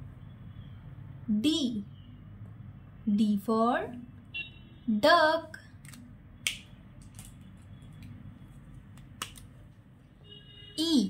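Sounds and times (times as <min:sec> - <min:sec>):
pen caps clicking: 0:09.0 - 0:09.5.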